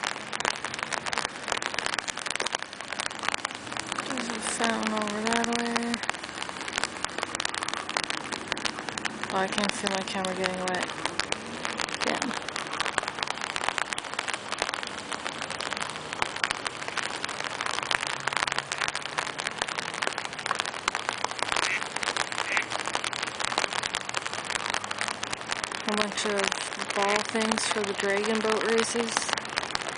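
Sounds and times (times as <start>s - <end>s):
rain pattering on umbrella: 0.0s - 29.9s.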